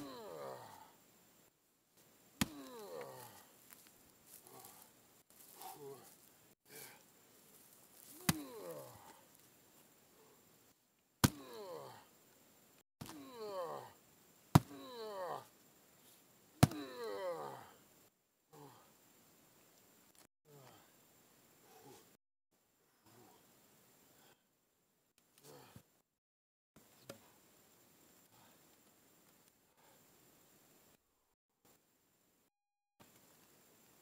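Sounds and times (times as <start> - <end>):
hatchet chopping wood: 11.2 - 11.5, 14.6 - 14.8, 16.6 - 16.9
sledgehammer striking log: 14.5 - 14.8.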